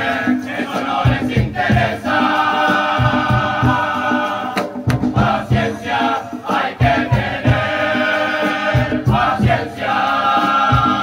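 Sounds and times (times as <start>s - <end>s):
drum beats: 0.0s - 11.0s
male chorus singing loudly: 0.0s - 11.0s.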